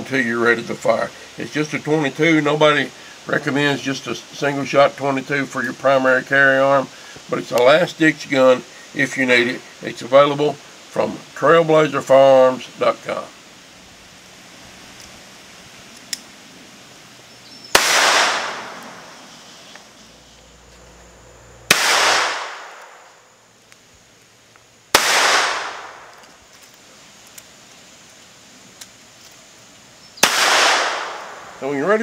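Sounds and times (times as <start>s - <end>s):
pistol shots with echo: 17.7s - 19.0s, 21.7s - 23.1s, 24.9s - 26.1s, 30.2s - 31.5s.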